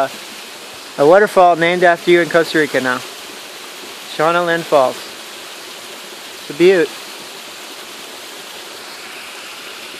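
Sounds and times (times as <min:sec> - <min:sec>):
waterfall rushing onto boulders: 0:00.0 - 0:09.9.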